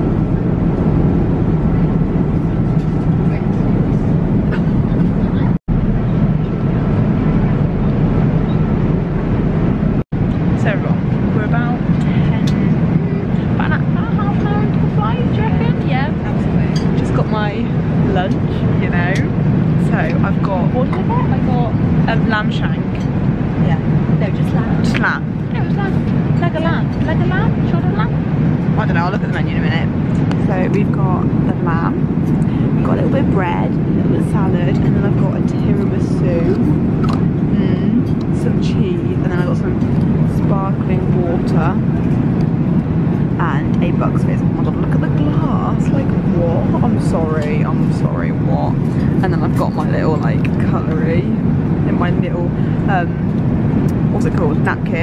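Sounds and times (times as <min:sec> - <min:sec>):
airliner cabin drone: 0:00.0 - 0:55.0
voices talking quietly: 0:01.4 - 0:08.7.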